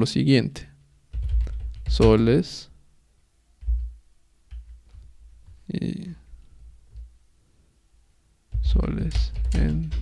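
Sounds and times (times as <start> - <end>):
person speaking: 1.8 - 2.8, 5.6 - 6.3, 8.5 - 10.0.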